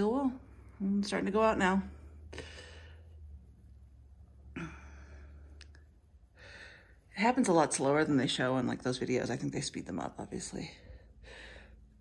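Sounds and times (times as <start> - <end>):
steady low hum: 0.0 - 12.0
person sighing breathily: 4.5 - 5.4.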